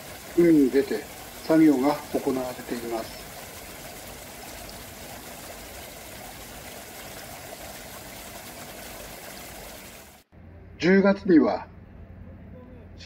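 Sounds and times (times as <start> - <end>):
water running in a tank: 0.0 - 10.3.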